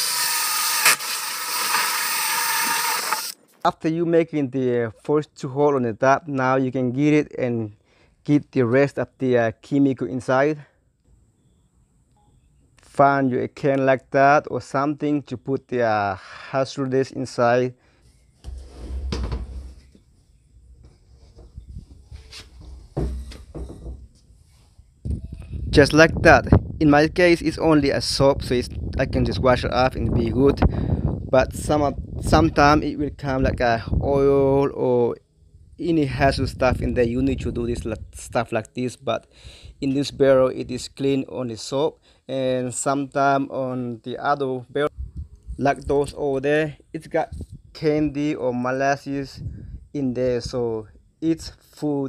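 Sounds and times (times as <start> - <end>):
drill with hole saw cutting plastic: 0.0 - 3.4
hollow plastic drum handling noise: 18.4 - 20.0, 22.3 - 24.2.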